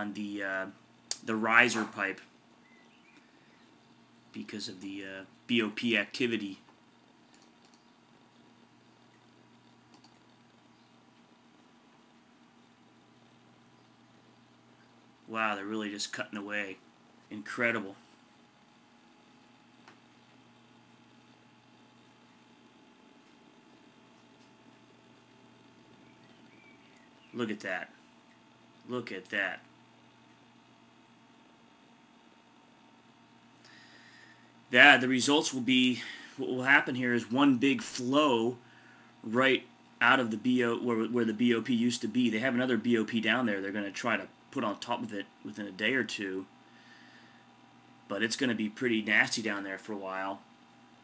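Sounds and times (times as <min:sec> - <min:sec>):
faint room hum: 0:00.0 - 0:51.0
faint steady hiss: 0:00.0 - 0:51.0
faint click: 0:06.7 - 0:07.9, 0:09.9 - 0:10.2.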